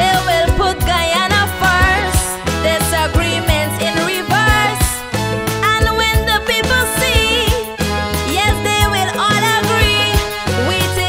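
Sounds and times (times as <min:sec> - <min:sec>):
bass line: 0:00.0 - 0:11.0
calypso music: 0:00.0 - 0:11.0
steady drum beat: 0:00.0 - 0:11.0.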